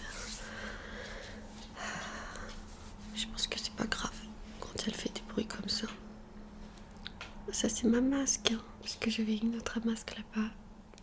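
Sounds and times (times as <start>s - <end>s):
soft breathy rustling: 0.0s - 3.5s.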